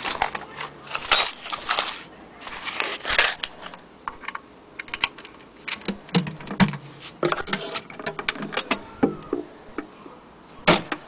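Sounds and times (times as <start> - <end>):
cardboard scraping rustle: 0.0 - 3.7.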